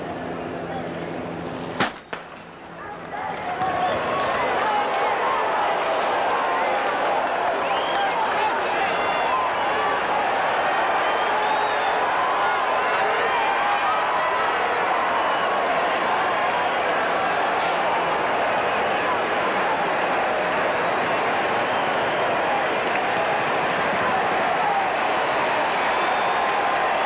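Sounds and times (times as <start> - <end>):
starting pistol shot: 1.8 - 2.4
stadium crowd cheering: 1.8 - 27.0.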